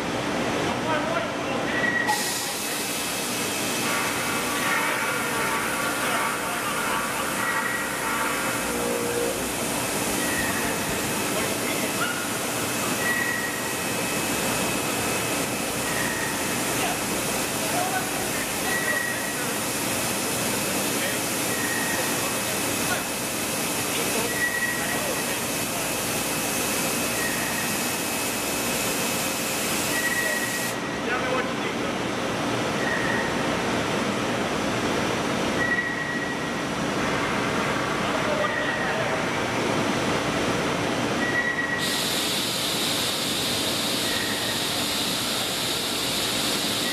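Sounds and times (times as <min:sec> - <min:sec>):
hiss: 0:02.1 - 0:04.7, 0:41.8 - 0:46.9.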